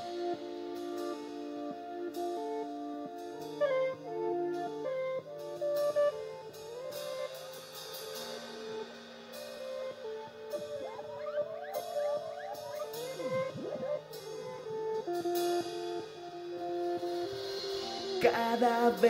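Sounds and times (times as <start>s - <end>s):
sustained backing chords: 0.0s - 19.0s
lead guitar solo: 9.6s - 18.2s.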